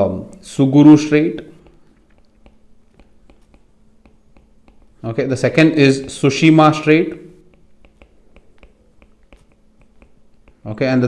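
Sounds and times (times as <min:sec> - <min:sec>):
stylus pen tapping on tablet: 0:01.4 - 0:05.0, 0:06.0 - 0:10.7.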